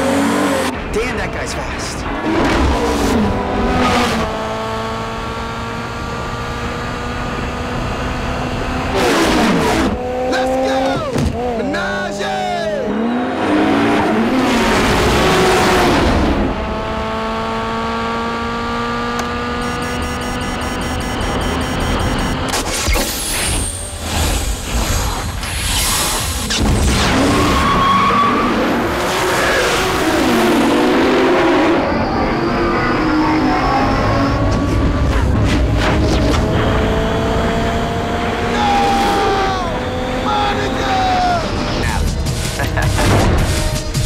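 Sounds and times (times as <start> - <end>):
sports car engines revving: 0.0 - 24.7, 27.8 - 44.0
people shouting: 38.5 - 41.5.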